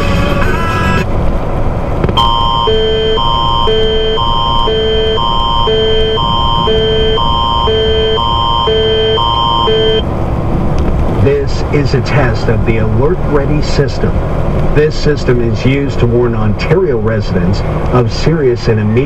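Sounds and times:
truck engine and road rumble: 0.0s - 19.0s
emergency alert tone on radio: 2.2s - 10.0s.

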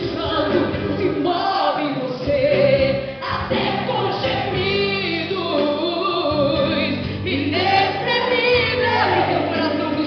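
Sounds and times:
congregation singing worship song: 0.0s - 10.0s
instrumental backing: 0.0s - 10.0s.

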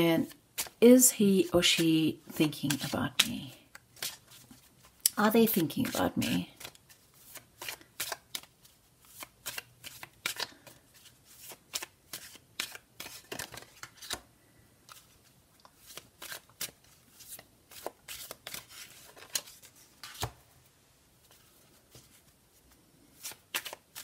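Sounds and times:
cards being shuffled: 1.5s - 14.2s, 14.9s - 20.4s, 21.3s - 24.0s.

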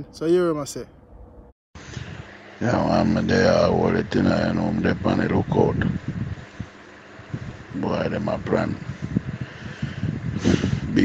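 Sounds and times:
buffeting low rumble: 0.0s - 11.0s.

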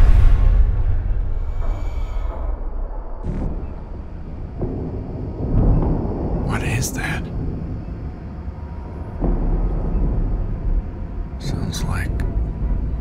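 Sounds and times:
deep rumble hit: 0.0s - 13.0s.

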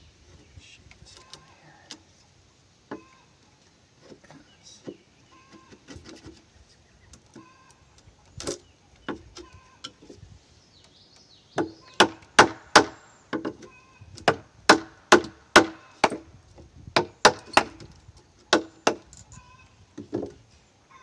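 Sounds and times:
wooden mallet striking chisel: 14.2s - 16.2s.

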